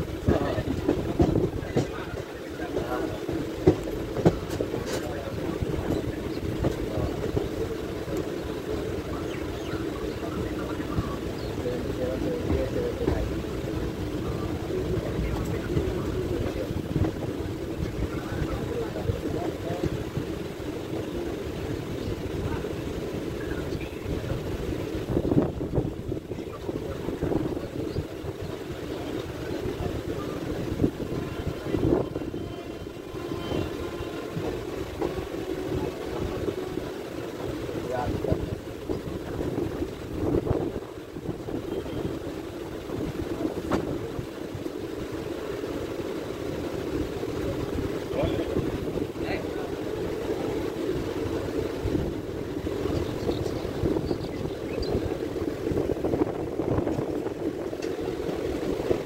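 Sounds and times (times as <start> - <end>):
train wheels rumbling on track: 0.0 - 59.0
wind buffeting microphone: 0.0 - 59.0.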